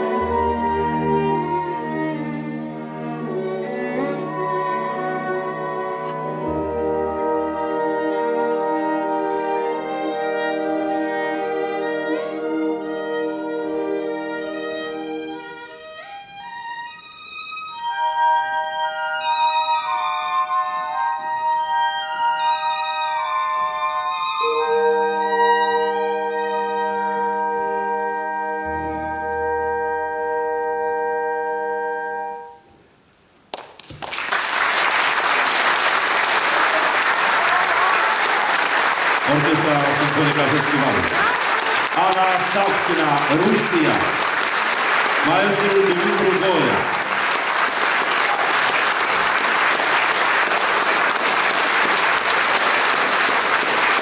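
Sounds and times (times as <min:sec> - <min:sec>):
solo violin melody: 0:00.0 - 0:32.5
orchestra chords: 0:00.0 - 0:33.0, 0:35.4 - 0:54.0
audience applauding: 0:33.5 - 0:54.0.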